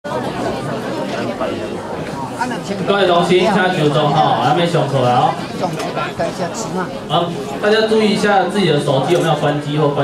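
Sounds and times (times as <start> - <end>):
babble of many people talking: 0.0 - 10.0.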